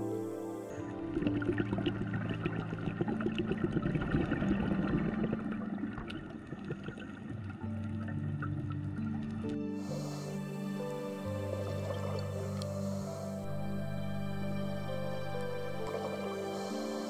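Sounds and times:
soft background music: 0.0s - 17.0s
water noise: 0.0s - 17.0s
underwater clicking crackle: 1.1s - 9.6s.

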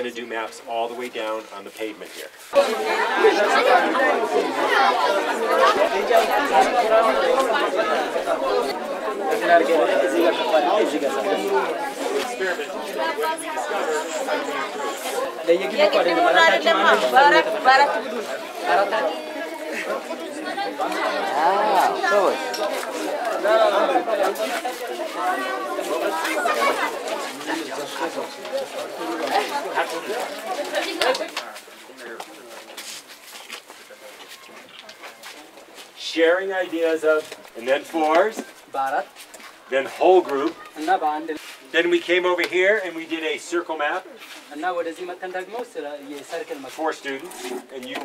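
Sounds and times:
children chattering: 2.5s - 48.0s.

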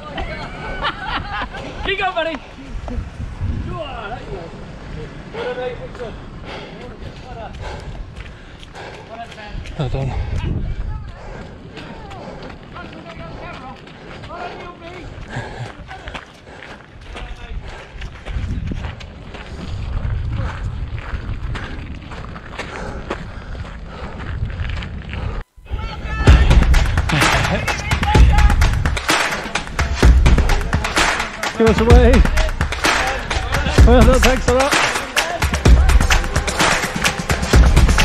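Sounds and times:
wind rumbling on microphone: 0.0s - 29.0s
footsteps on a muddy path: 6.0s - 25.5s
background music: 26.2s - 38.0s.

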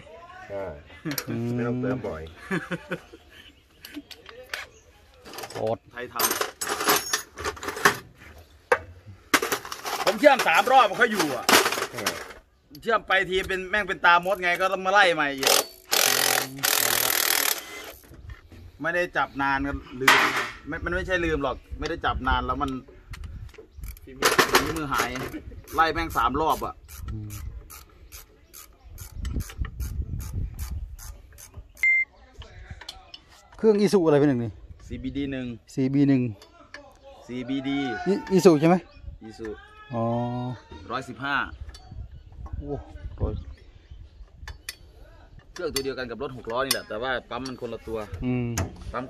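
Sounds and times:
metal tools clinking in a tray: 5.3s - 8.0s
ratchet wrench clicking: 15.4s - 18.0s.

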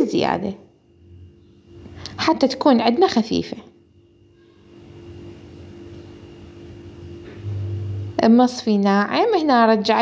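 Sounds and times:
steady low hum: 0.0s - 10.0s
deeper drone: 4.4s - 8.5s.

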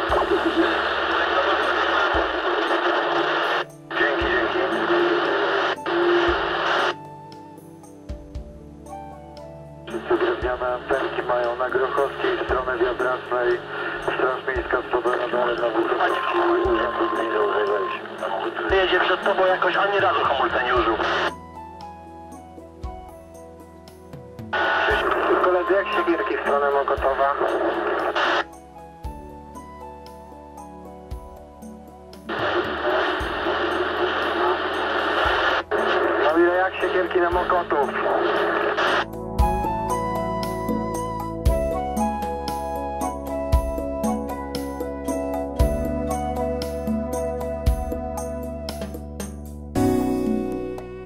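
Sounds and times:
tinny radio voices: 0.0s - 7.0s, 10.0s - 21.3s, 24.6s - 28.4s, 32.3s - 39.1s
steady whistle tone: 16.0s - 18.2s, 39.4s - 44.5s.

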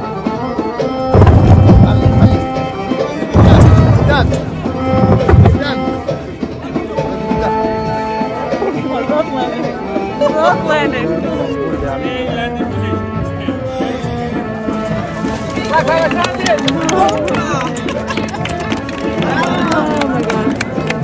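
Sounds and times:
music with hand drums: 0.0s - 21.0s.

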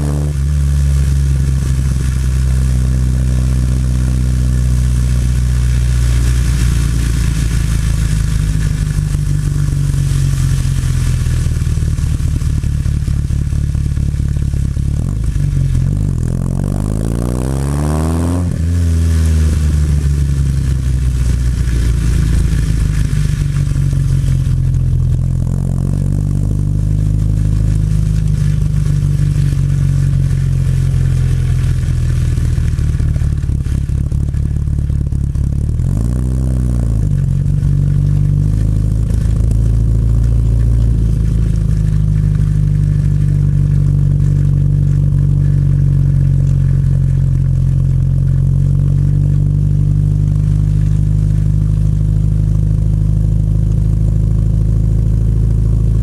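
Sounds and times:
car engine at low revs: 0.0s - 56.0s.

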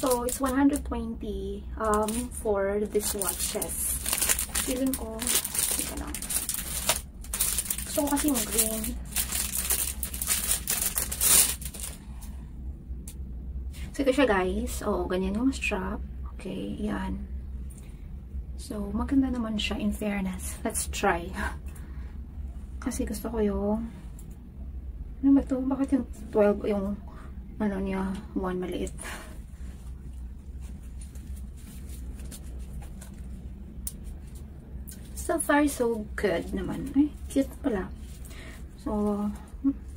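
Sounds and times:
packaging rustling: 0.0s - 0.8s, 1.8s - 12.0s
plastic wrapping crinkling: 0.0s - 0.9s, 1.8s - 12.0s, 30.6s - 33.3s
steady low hum: 0.0s - 39.9s.

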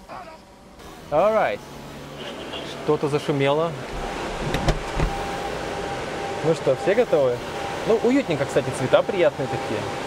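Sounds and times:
steady electric hum: 0.0s - 10.0s.

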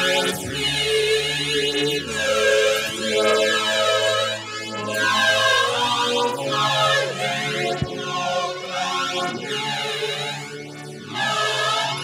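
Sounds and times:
church choir singing: 0.0s - 12.0s.

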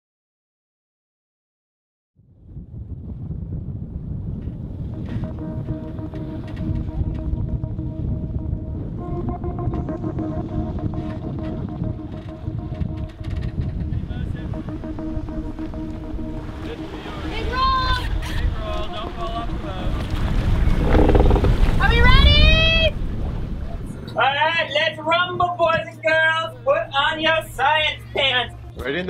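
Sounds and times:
wind buffeting microphone: 2.3s - 24.2s
soft sustained musical chords: 5.0s - 21.4s, 23.8s - 28.8s
sea noise: 5.0s - 24.6s.

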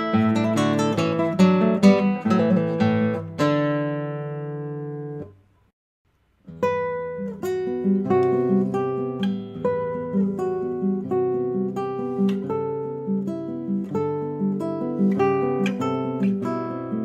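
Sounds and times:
acoustic guitar plucking: 0.0s - 5.4s, 6.2s - 17.0s.

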